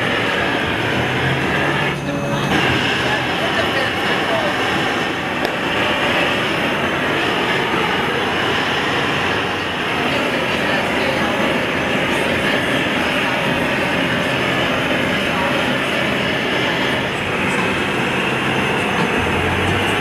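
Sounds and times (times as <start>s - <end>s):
gas torches hissing: 0.0s - 20.0s.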